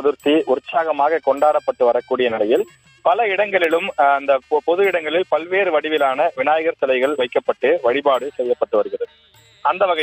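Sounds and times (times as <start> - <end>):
news narration: 0.0 - 10.0.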